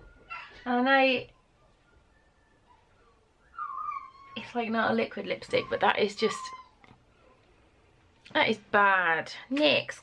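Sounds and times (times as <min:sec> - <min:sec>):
animal whining: 0:01.6 - 0:04.6, 0:05.5 - 0:06.9.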